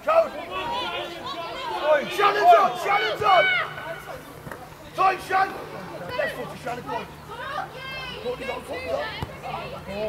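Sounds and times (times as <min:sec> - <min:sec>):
children shouting during play: 0:00.5 - 0:04.2.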